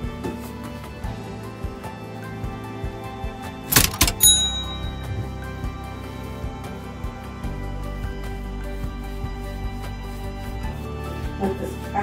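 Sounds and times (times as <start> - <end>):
background music: 0.0 - 12.0
cash register cha-ching: 3.7 - 5.3.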